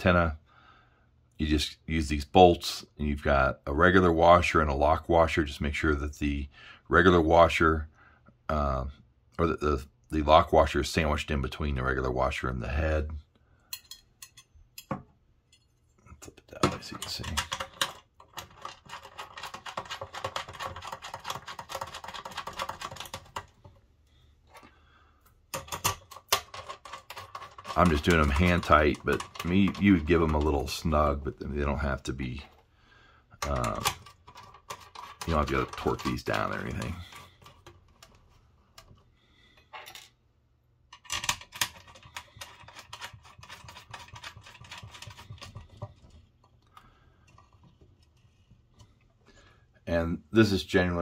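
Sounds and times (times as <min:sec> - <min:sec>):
metal bolts clicking and scraping: 0:13.7 - 0:15.8, 0:16.5 - 0:23.5, 0:25.5 - 0:30.8, 0:33.4 - 0:39.0, 0:40.9 - 0:46.6
metallic clicks of bolts and washers: 0:40.9 - 0:42.6.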